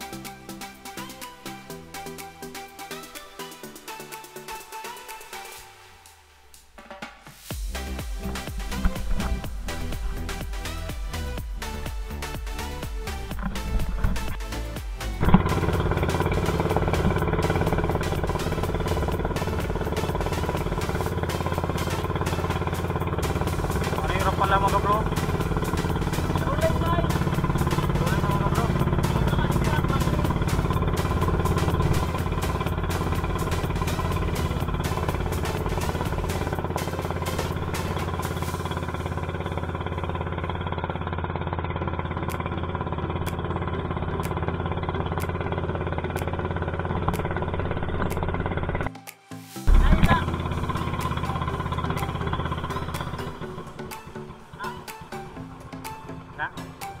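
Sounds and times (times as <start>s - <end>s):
boat engine droning: 7.6s - 57.0s
person speaking: 26.3s - 30.5s, 49.7s - 50.6s, 54.4s - 55.1s.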